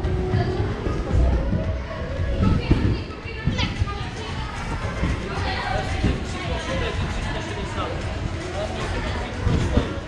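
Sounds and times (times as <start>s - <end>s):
children chattering and playing: 0.0s - 10.0s
thumps on trampoline beds: 9.4s - 10.0s.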